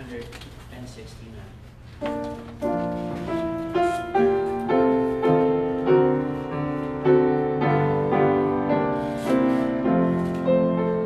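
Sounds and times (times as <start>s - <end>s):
piano playing hymn chords: 2.0s - 11.0s.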